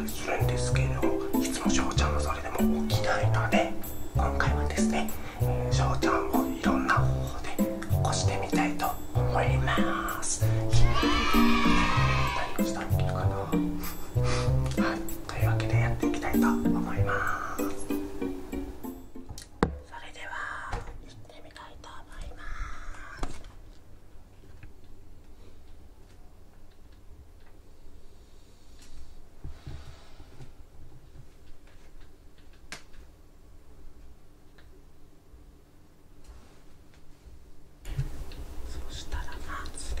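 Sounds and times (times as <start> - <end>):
man whispering: 0.0 - 10.6, 12.4 - 13.6, 14.8 - 17.8, 19.8 - 23.2, 38.7 - 40.0.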